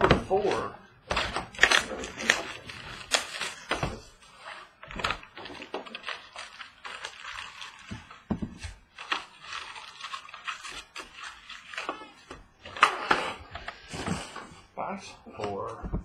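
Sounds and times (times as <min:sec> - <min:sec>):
rustling and scraping of card packs: 0:00.0 - 0:14.7.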